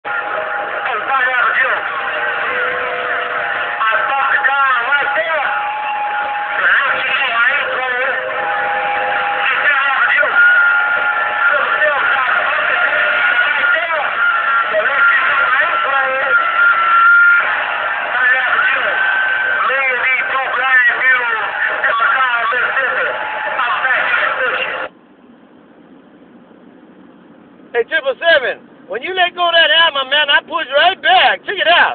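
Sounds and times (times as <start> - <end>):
garbled distorted radio voices: 0.0 - 24.9, 27.7 - 31.9.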